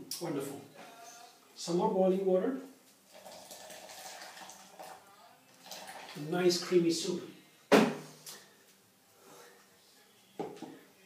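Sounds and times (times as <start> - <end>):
water pouring: 3.0 - 6.7.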